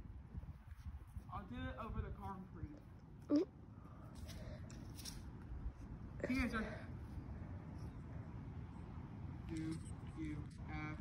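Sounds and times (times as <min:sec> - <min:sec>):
low wind rumble on microphone: 0:00.0 - 0:02.8.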